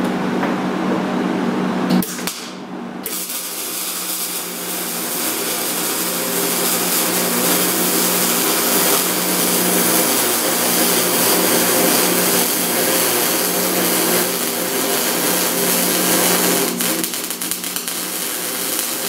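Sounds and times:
electrical hum: 0:00.0 - 0:19.0
plasma cutter hissing: 0:03.1 - 0:19.0.

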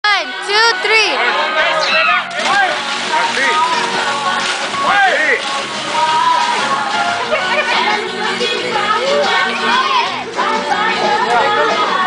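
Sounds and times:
water churning and sloshing: 0:00.6 - 0:12.0
splash into swimming pool: 0:01.9 - 0:08.0.

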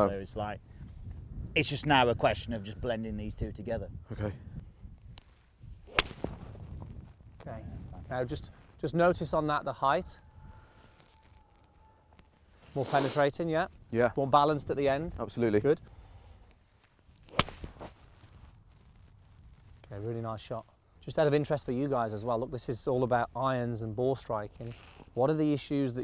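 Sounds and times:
golf club swish: 0:05.8 - 0:06.6, 0:17.2 - 0:18.4
golf club striking ball: 0:05.9 - 0:06.4, 0:17.3 - 0:17.8.

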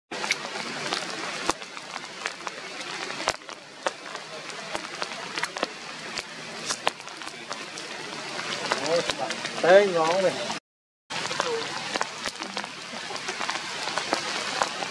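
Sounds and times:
rain hissing on canopy: 0:00.1 - 0:14.9
drips and taps on leaves: 0:00.2 - 0:10.4, 0:11.1 - 0:14.9.

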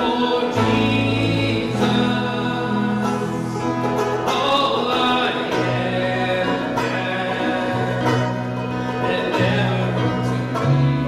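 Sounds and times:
banjo playing: 0:00.0 - 0:11.0
person singing: 0:00.0 - 0:11.0
plucked string instrument: 0:00.0 - 0:11.0.

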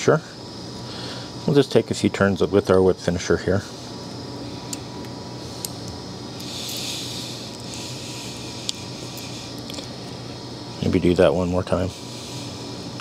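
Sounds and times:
low room hum: 0:00.0 - 0:13.0.

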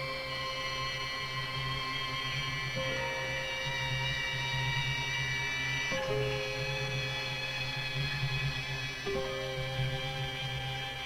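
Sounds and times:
music of long held notes: 0:00.0 - 0:11.0.

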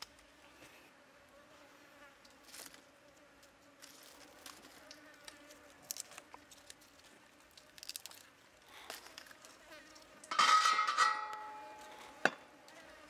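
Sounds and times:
flying insect buzzing: 0:00.0 - 0:07.8, 0:08.7 - 0:10.3, 0:11.7 - 0:13.0.

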